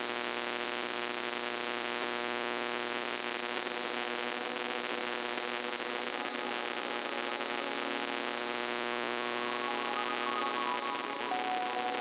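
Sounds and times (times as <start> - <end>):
steady hum-like tones: 3.3 - 12.0
digital data tones: 9.4 - 12.0.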